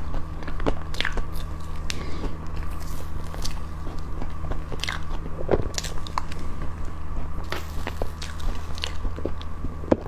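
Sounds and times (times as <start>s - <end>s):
chewing soft cake: 0.0s - 10.0s
steady low hum: 0.0s - 10.0s
wet mouth and lip clicks: 0.4s - 9.5s.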